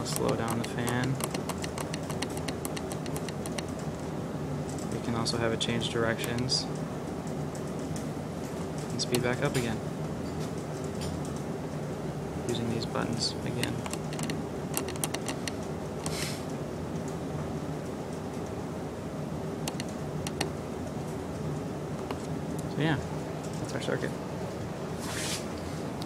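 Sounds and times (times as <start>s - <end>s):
irregular sharp clicks: 0.0s - 3.9s, 13.6s - 16.2s, 19.6s - 20.5s
motor spinning fan with low hum: 0.0s - 26.0s.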